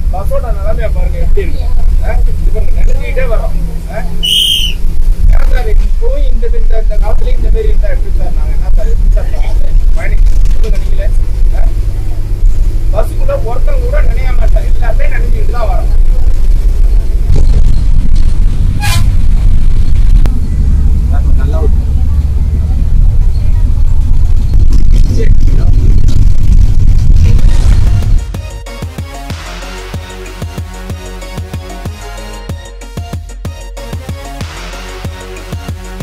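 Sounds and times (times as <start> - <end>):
moving bus rumble: 0.0 - 36.0
man talking: 5.3 - 11.8, 12.9 - 15.9.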